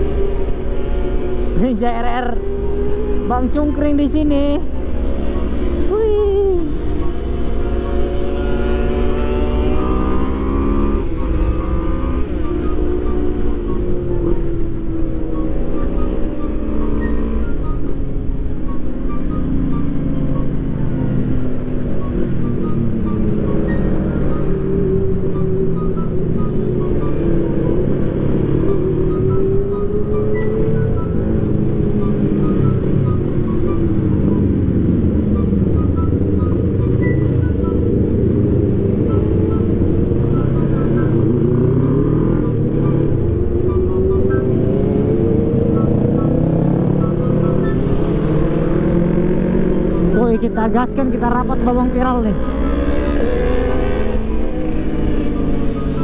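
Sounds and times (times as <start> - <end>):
background music: 0.0 - 56.0
motorcycle engine revving: 0.0 - 56.0.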